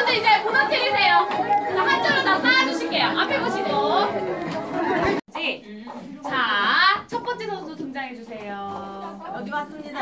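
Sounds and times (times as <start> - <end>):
overlapping chatter of voices: 0.0 - 7.4.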